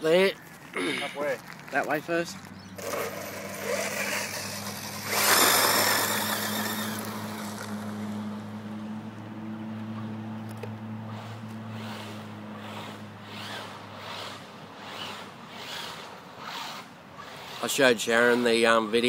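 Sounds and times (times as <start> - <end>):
steady low hum: 2.7 - 17.5
radio-controlled buggy motor: 2.8 - 8.1, 11.1 - 19.0
spraying gravel: 2.8 - 8.1.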